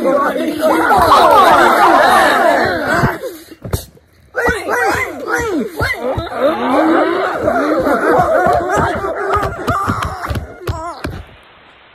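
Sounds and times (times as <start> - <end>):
many overlapping voices gliding: 0.0 - 11.3.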